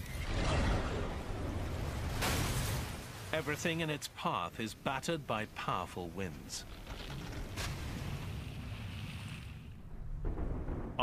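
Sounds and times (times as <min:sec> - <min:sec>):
low wind rumble: 0:04.6 - 0:11.0.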